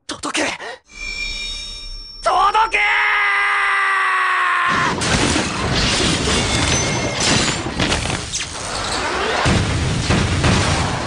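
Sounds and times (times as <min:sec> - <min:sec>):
young man screaming: 0:02.7 - 0:04.9
loud crashing noise: 0:04.8 - 0:11.0.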